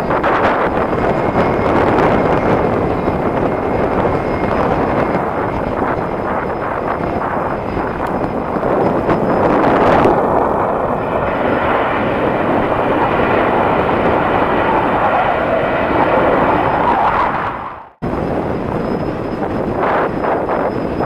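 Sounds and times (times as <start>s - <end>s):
jet engines roaring: 0.0s - 21.0s
wind noise on microphone: 0.0s - 21.0s.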